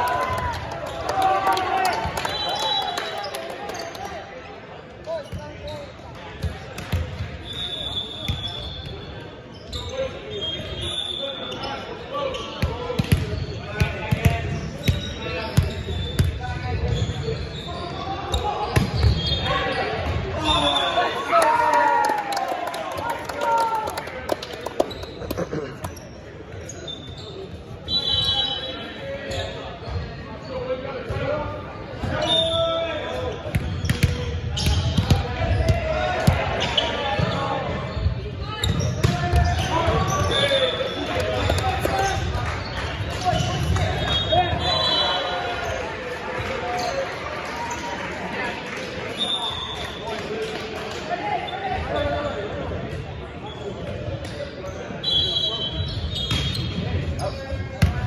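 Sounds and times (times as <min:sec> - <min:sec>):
sneakers squeaking on floor: 0:05.1 - 0:21.0, 0:24.8 - 0:46.0, 0:51.5 - 0:58.0.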